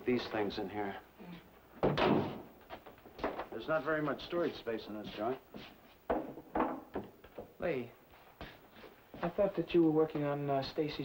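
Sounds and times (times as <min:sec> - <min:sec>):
door shutting: 0:01.8 - 0:02.5.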